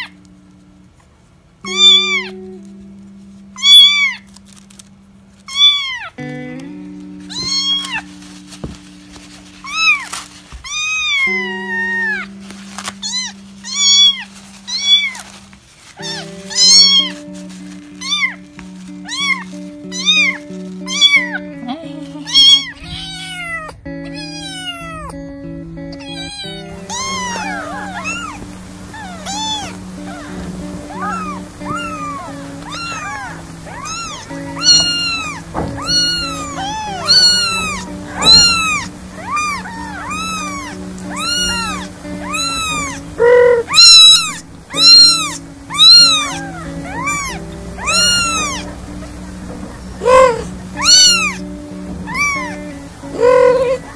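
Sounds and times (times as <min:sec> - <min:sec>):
kittens meowing: 0:00.0 - 0:00.2, 0:01.6 - 0:02.6, 0:03.6 - 0:04.3, 0:05.5 - 0:06.3, 0:07.3 - 0:08.1, 0:09.6 - 0:15.3, 0:16.0 - 0:17.3, 0:17.9 - 0:25.2, 0:25.9 - 0:53.9
background music: 0:16.0 - 0:22.8, 0:23.8 - 0:53.9.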